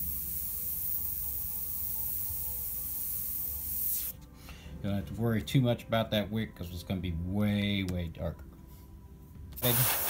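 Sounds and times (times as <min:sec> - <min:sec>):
airbrush spraying hiss: 0:00.0 - 0:04.2, 0:09.6 - 0:10.0.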